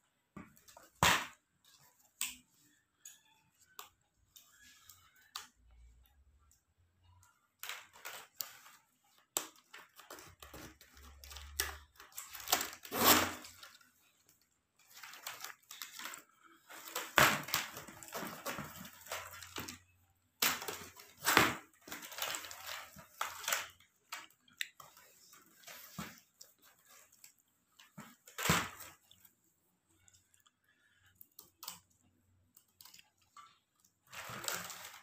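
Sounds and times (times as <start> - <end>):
plastic strips rustling and clicking: 0.4 - 35.0.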